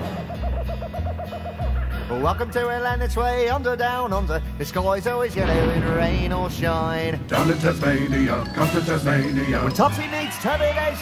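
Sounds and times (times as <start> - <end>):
theme music bass notes: 0.0 - 10.2.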